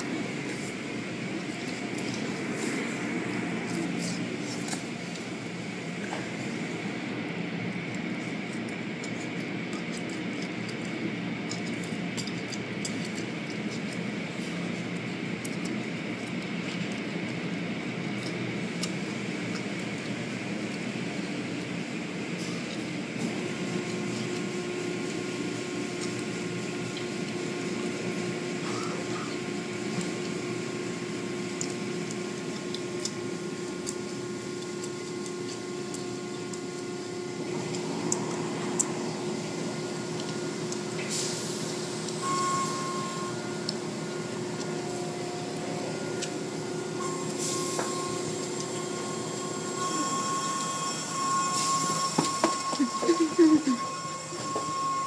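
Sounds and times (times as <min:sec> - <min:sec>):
steady motor hum: 0:00.0 - 0:55.0.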